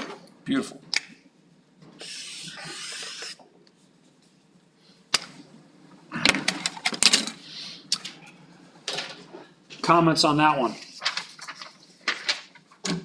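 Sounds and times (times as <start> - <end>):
felt-tip marker scratching paper: 2.0 - 3.4.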